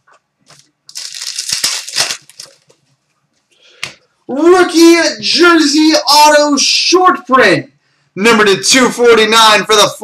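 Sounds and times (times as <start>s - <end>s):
plastic packaging crinkling: 0.5s - 2.9s.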